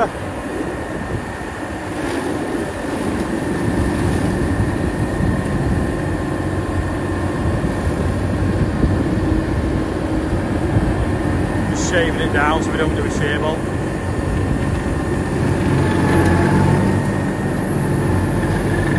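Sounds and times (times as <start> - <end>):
tractor mower droning: 1.8 - 18.9.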